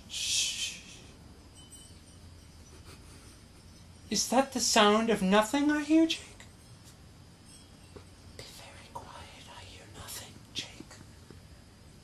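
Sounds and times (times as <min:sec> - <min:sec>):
hissed sibilants: 0:00.0 - 0:04.0
faint whispering: 0:08.4 - 0:11.2.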